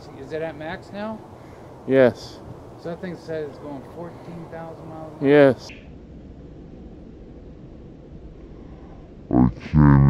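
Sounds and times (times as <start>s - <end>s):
low dull background noise: 0.0s - 10.0s.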